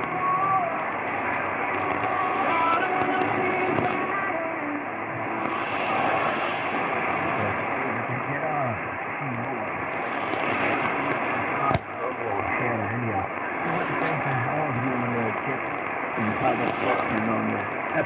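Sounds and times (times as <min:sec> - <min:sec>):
radio static hiss: 0:00.0 - 0:18.0
sharp radio crackle: 0:00.0 - 0:18.0
voice on radio: 0:07.0 - 0:09.9, 0:10.8 - 0:18.0.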